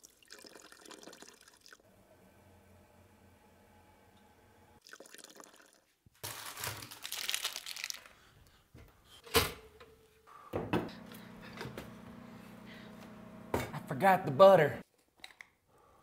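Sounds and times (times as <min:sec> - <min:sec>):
crinkling rustle: 0:06.2 - 0:08.2.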